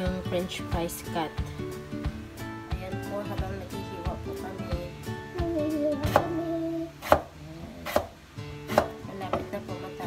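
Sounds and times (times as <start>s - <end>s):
knife chopping potato: 6.0s - 6.4s, 7.0s - 9.5s.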